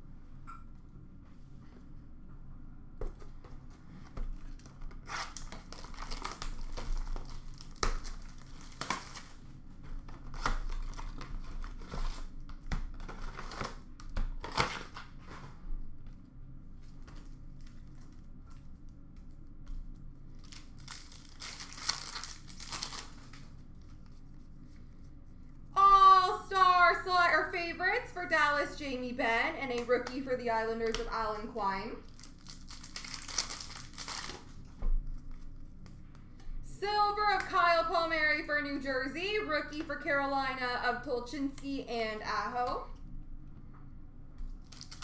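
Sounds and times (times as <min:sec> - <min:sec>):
foil wrappers tearing and crinkling: 0:04.5 - 0:15.5, 0:20.3 - 0:24.0, 0:32.0 - 0:34.6, 0:44.6 - 0:45.0.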